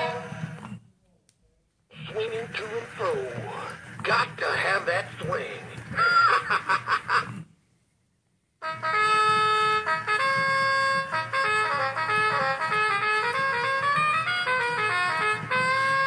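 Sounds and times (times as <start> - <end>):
song with held notes: 8.6 - 16.0
toy singing over swing track: 8.6 - 16.0.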